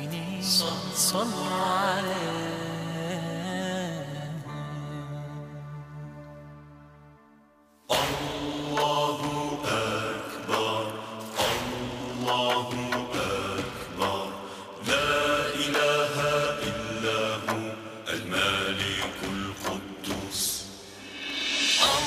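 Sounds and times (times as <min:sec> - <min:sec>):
devotional chanting voices: 0:00.0 - 0:05.4, 0:07.9 - 0:22.0.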